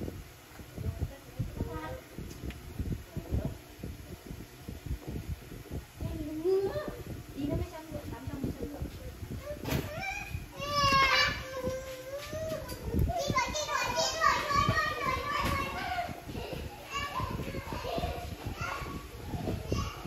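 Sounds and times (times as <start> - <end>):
children calling and chattering: 5.9 - 20.0.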